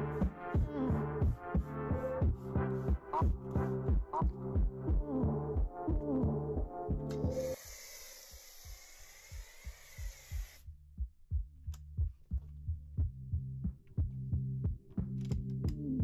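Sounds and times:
music with pulsing beat: 0:00.0 - 0:07.6, 0:10.0 - 0:16.0
pressure washer foam spray hissing: 0:07.3 - 0:10.6.

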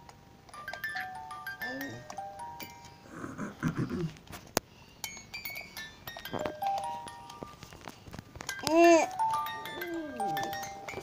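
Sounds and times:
toy electronic beeping melody: 0:08.5 - 0:11.0.

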